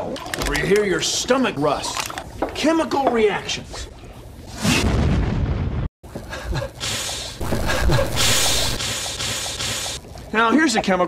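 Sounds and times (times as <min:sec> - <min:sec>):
loud hiss: 0:07.4 - 0:10.0.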